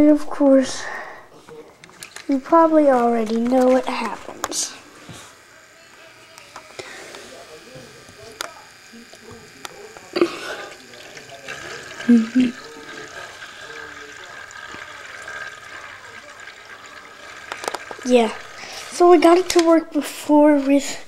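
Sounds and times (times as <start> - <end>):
motor whine: 0.8 - 21.0
swirling water: 10.5 - 19.1.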